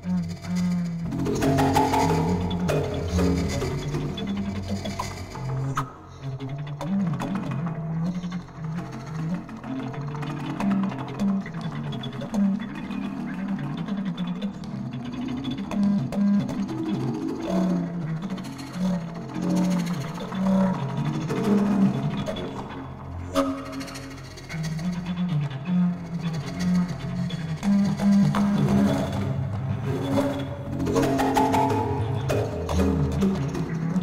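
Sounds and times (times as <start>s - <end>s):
live electronics: 0.0s - 34.0s.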